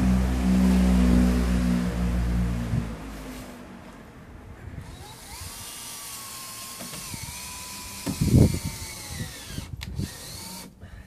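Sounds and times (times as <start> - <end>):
cordless drill motor whine: 4.8 - 10.9.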